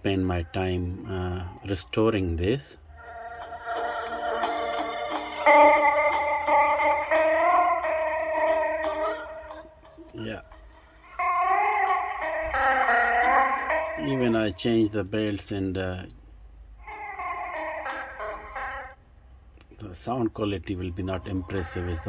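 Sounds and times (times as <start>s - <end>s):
song from small speaker: 2.9s - 14.6s, 16.8s - 19.0s, 20.8s - 22.0s.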